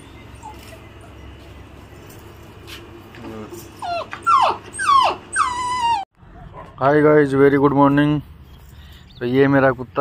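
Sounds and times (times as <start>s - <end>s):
puppy whining: 0.2s - 1.5s, 3.5s - 6.6s.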